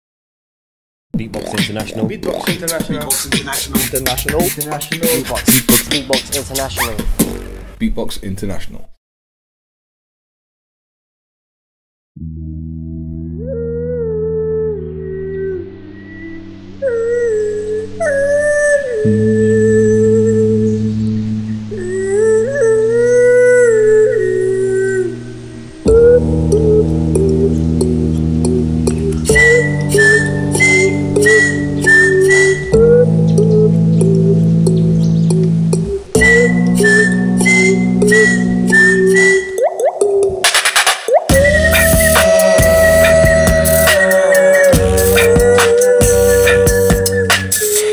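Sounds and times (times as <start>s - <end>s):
beatboxed kick and snare: 1.2s - 7.8s, 25.9s - 47.9s
held melodic vocal note: 1.3s - 6.7s, 13.3s - 40.4s, 41.1s - 47.9s
low hummed bass drone: 12.2s - 39.4s, 41.3s - 44.0s, 44.7s - 47.3s
faint high vocal line: 21.7s - 27.8s, 41.1s - 47.9s
gliding held vocal tone: 21.7s - 34.5s, 41.2s - 47.9s.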